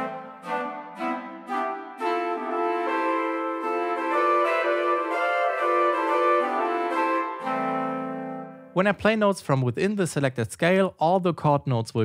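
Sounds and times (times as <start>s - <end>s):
woodwind block chords: 0.0s - 9.0s.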